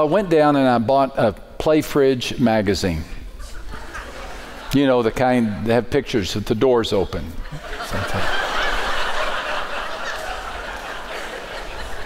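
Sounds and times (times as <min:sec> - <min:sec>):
large audience laughing: 0:03.4 - 0:05.2, 0:07.2 - 0:12.0.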